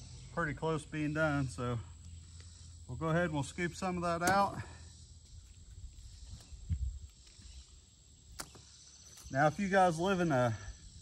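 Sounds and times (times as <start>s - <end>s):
insects humming: 0.0s - 11.0s.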